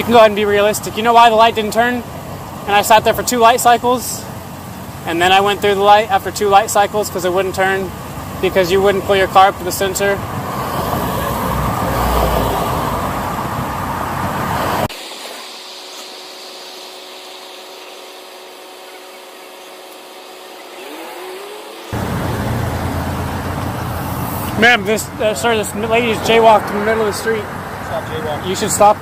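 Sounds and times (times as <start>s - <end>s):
street traffic noise: 0.0s - 16.2s, 16.8s - 29.0s.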